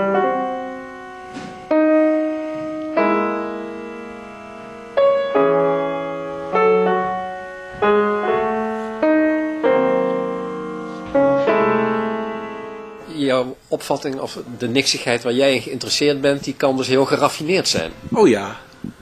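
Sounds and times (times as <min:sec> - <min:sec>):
piano chords ringing: 0:00.0 - 0:19.0.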